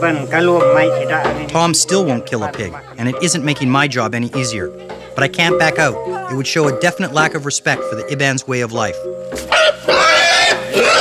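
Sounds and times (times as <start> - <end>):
pig squealing: 9.5 - 11.0.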